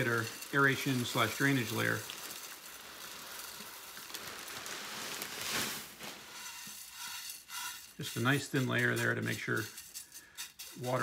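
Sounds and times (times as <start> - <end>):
grains pattering into pot: 0.0 - 11.0.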